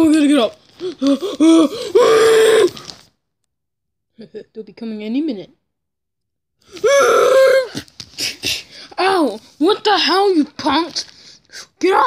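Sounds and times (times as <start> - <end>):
child's rough vocal cry: 0.8 - 2.9, 6.7 - 9.3.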